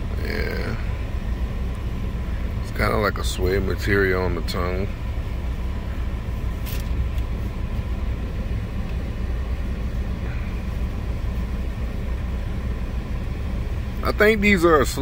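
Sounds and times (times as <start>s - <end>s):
car cabin rumble: 0.0s - 15.0s.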